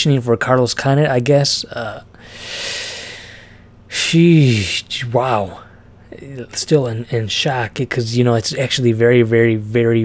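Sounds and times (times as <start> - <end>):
man sighing: 2.2 - 4.8.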